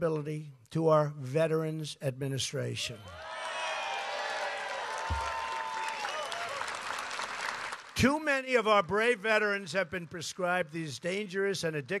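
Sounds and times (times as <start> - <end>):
crowd applauding: 3.1 - 8.0.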